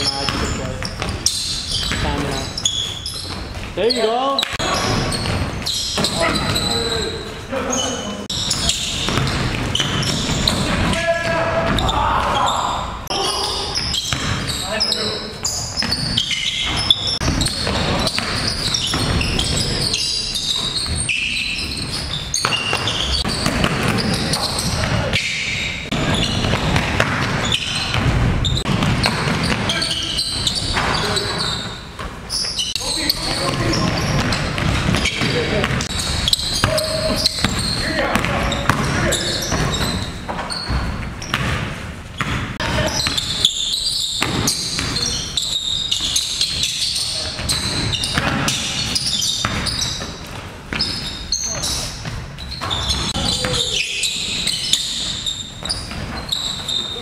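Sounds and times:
players' indistinct voices: 0.0 - 57.0
basketball bouncing on hardwood floor: 9.0 - 11.0, 22.4 - 25.0, 26.1 - 29.7, 33.4 - 43.3, 49.4 - 50.1.

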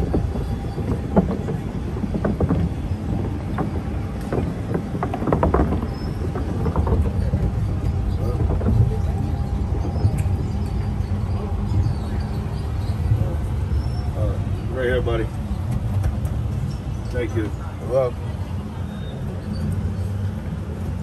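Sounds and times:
vehicle rumbling over wooden planks: 0.0 - 21.0
people's voices: 6.4 - 21.0.

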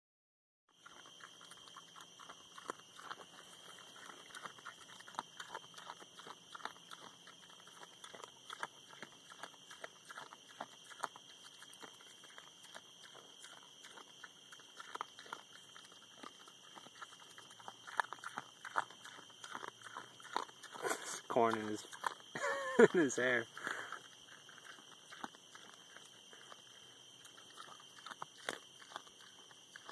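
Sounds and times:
hog chewing corn: 0.7 - 29.9.

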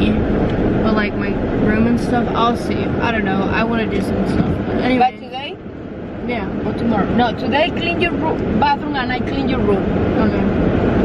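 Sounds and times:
car engine and road noise: 0.0 - 11.0
person talking: 0.8 - 5.6.

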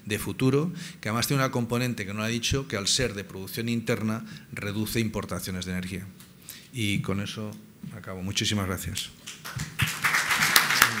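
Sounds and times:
audience applauding: 9.2 - 11.0.

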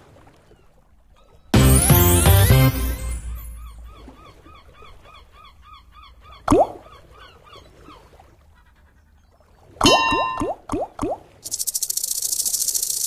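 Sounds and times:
win fanfare: 1.6 - 3.9
soft chirping effect: 1.6 - 4.9, 11.4 - 13.0.

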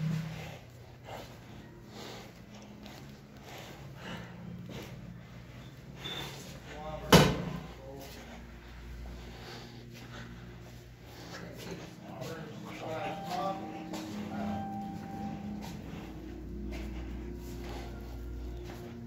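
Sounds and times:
low building hum: 0.0 - 19.0.

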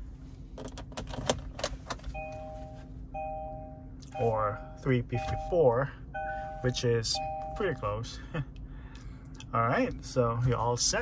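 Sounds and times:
dashboard warning chime: 2.0 - 8.4.

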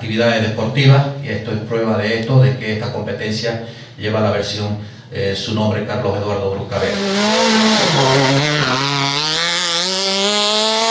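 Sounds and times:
rally car engine revving: 6.8 - 10.9.

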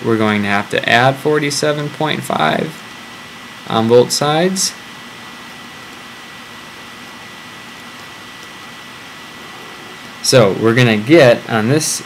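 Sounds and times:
steady hiss: 0.0 - 12.0
thin high-pitched whine: 5.7 - 12.0.

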